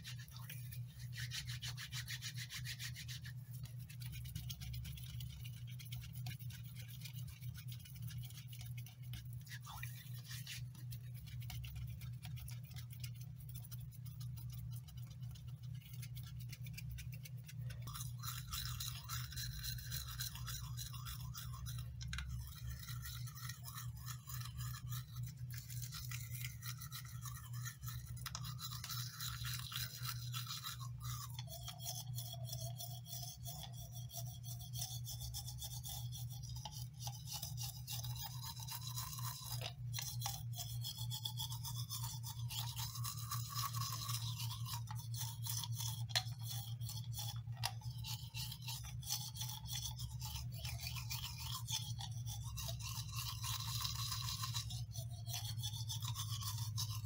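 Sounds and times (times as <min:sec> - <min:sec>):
toothbrush scrubbing teeth: 0:00.0 - 0:57.0.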